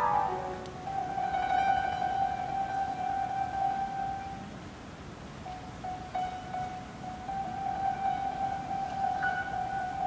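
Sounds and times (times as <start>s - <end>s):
long held instrumental note: 0.0s - 3.5s.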